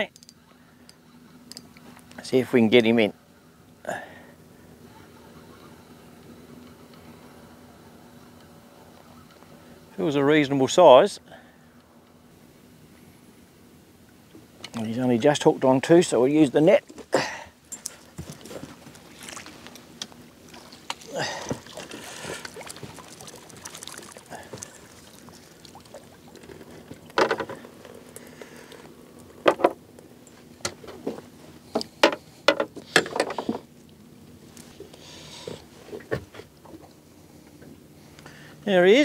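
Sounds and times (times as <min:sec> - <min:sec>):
water sloshing and splashing: 0:17.8 - 0:29.5.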